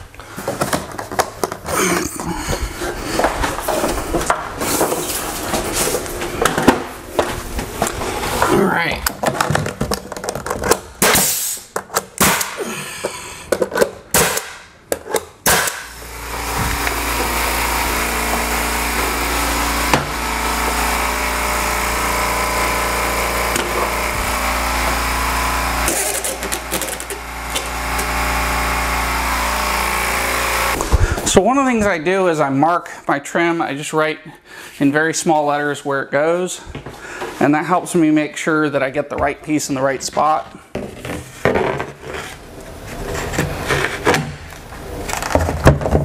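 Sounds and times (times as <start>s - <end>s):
air compressor running: 0.0s - 9.2s, 10.9s - 31.4s
pneumatic nailer firing: 10.7s - 12.9s, 13.8s - 31.2s.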